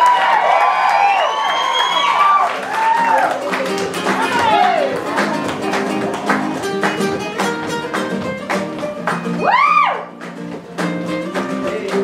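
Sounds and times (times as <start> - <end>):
audience cheering and whooping: 0.0 - 5.5, 9.4 - 10.2
long rising whistle: 1.0 - 2.4
flamenco acoustic guitar music: 2.7 - 12.0.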